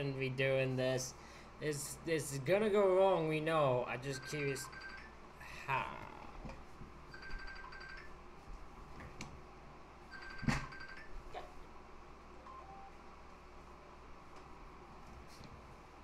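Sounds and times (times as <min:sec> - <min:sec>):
phone ringing faintly: 0:04.0 - 0:05.2, 0:07.1 - 0:08.2, 0:10.1 - 0:11.5.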